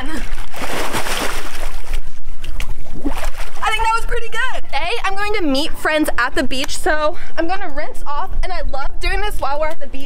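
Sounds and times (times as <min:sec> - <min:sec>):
large splash and churning water: 0:00.3 - 0:02.1
woman's voice: 0:03.6 - 0:10.0.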